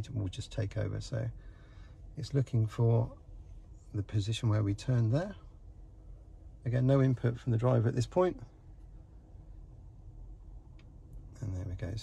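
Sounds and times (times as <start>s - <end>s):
faint low car cabin rumble: 0.0s - 12.0s
small tick: 10.7s - 11.2s.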